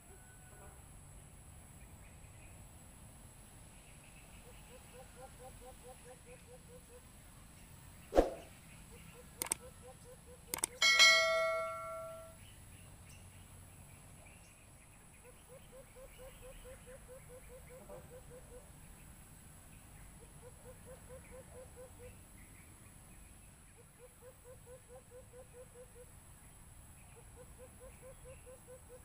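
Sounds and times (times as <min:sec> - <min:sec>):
short clicks: 0:09.4 - 0:09.6, 0:10.5 - 0:10.8
metallic clang ringing: 0:10.8 - 0:12.4.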